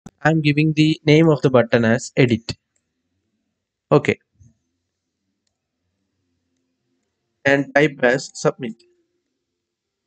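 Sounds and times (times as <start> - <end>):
person saying a word: 7.5 - 8.7.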